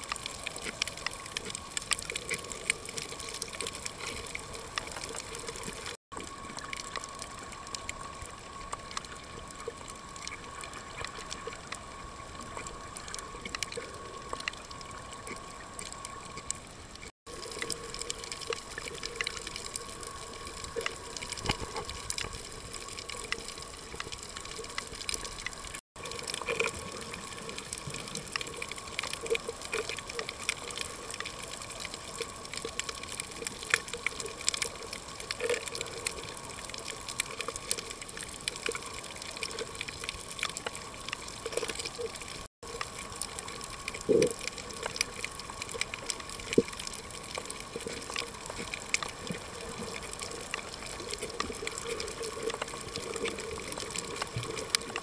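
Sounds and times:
underwater rush with crackling clicks: 0:00.0 - 0:55.0.

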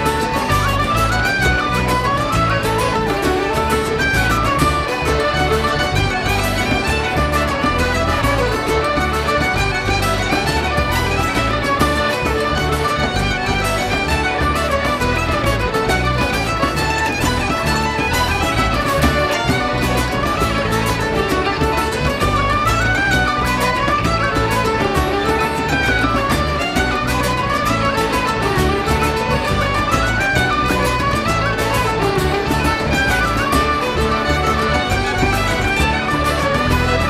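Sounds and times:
accordion: 0:00.0 - 0:37.0
fiddle melody: 0:00.0 - 0:37.0.

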